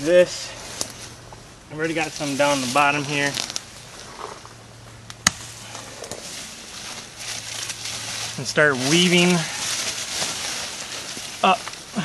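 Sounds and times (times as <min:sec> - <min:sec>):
leafy branches rustling: 0:00.0 - 0:12.0
sharp branch crack: 0:05.0 - 0:11.9.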